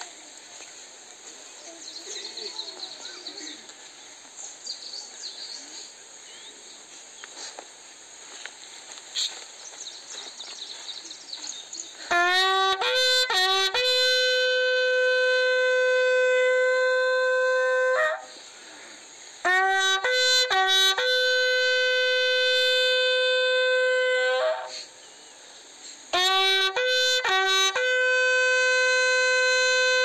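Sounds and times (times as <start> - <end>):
bugle playing: 12.0 - 18.4, 19.4 - 24.9, 26.1 - 30.0.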